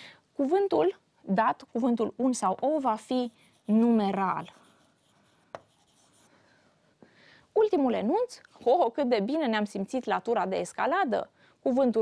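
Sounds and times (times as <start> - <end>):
stylus scratching on tablet screen: 2.6 - 6.3.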